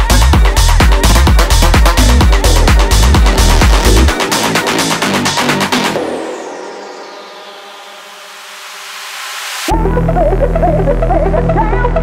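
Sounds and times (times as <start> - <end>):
held synth chord: 1.2 - 11.1
rising noise sweep: 2.0 - 9.7.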